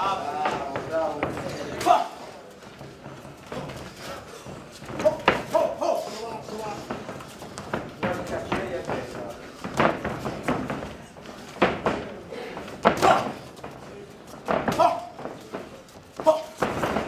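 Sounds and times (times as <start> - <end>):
crowd in a hall: 0.0 - 17.0
feet on ring canvas: 0.0 - 17.0
people shouting: 1.7 - 2.3, 12.5 - 13.5, 14.7 - 15.2
punches thudding: 2.7 - 17.0.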